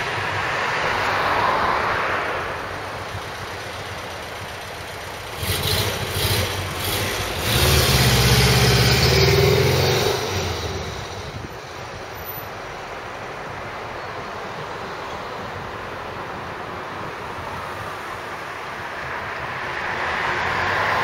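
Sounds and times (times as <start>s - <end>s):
city street traffic: 0.0s - 21.0s
vehicle engine rumble: 0.0s - 21.0s.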